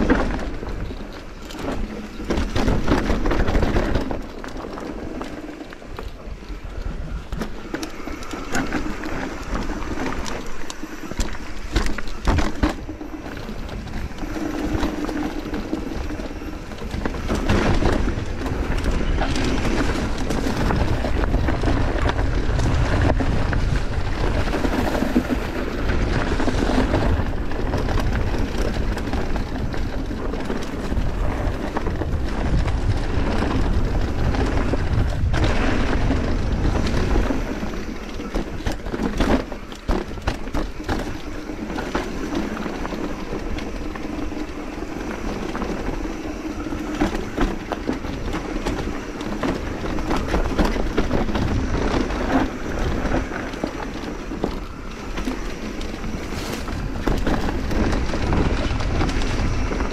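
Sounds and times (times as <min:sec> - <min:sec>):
bike rattling over stony ground: 0:00.0 - 0:59.9
bike tyres rolling over dirt: 0:00.0 - 0:59.9
wind buffeting microphone: 0:00.0 - 0:59.9.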